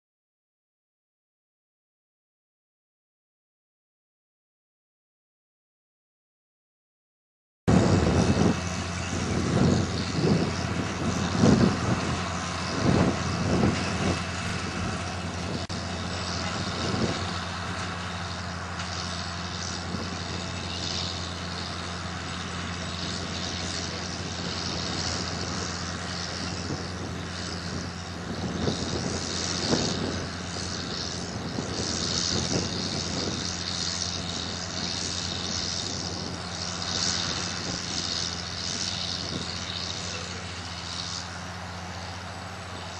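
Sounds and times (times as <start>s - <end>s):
diesel engine droning: 7.7s - 42.9s.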